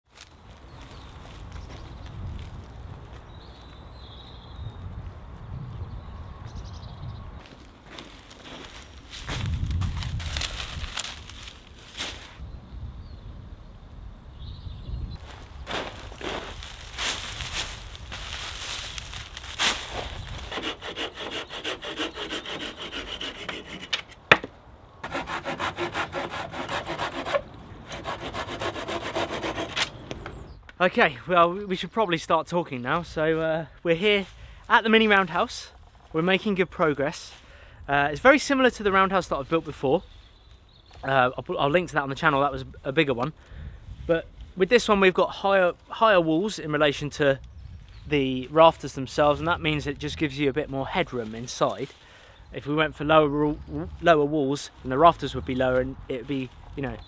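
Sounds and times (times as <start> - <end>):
dry reed bundles rustling: 8.0 - 12.4, 15.2 - 20.5
fast rasping rub: 19.9 - 24.1, 25.0 - 29.8.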